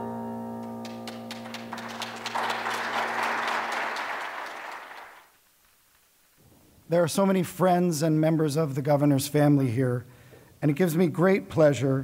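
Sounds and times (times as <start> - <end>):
audience applauding: 0.8 - 5.3.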